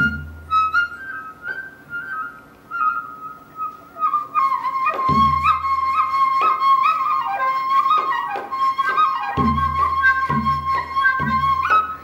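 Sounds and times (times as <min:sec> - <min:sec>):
bamboo flute melody: 0:00.0 - 0:12.0.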